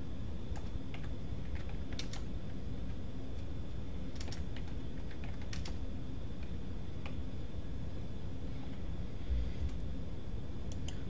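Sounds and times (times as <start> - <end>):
steady low hum: 0.0 - 11.0
computer keyboard keys clicking: 0.5 - 2.3, 4.1 - 5.8.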